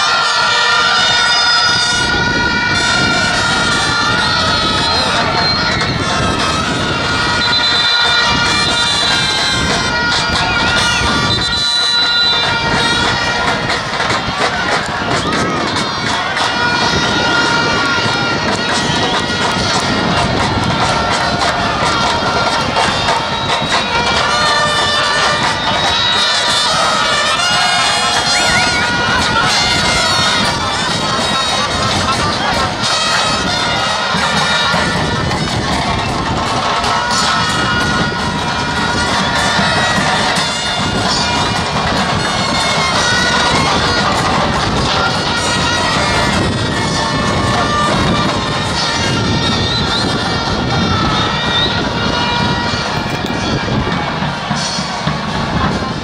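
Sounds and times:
crowd shouting and chanting: 0.0s - 56.0s
horns blowing long notes: 0.0s - 56.0s.

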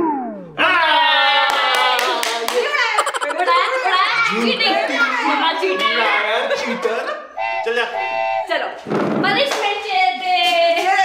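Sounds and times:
man clapping hands: 1.5s - 3.3s
people laughing: 1.5s - 5.0s, 6.3s - 7.3s.

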